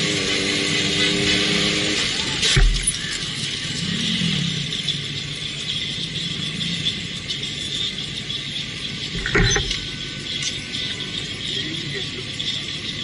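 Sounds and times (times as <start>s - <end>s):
motorcycle engine running: 0.0s - 13.0s
road and wind noise: 0.0s - 13.0s.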